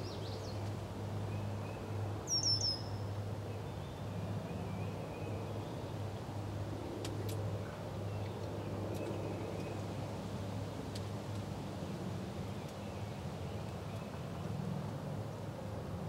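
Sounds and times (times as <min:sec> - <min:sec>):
songbird chirping: 0:01.4 - 0:03.0.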